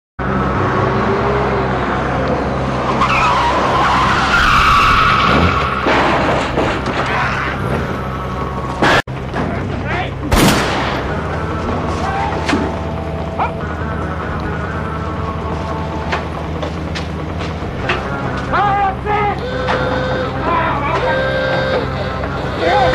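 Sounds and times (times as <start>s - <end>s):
tyres squealing: 2.2s - 10.2s, 11.3s - 22.9s
van engine running: 5.8s - 22.9s.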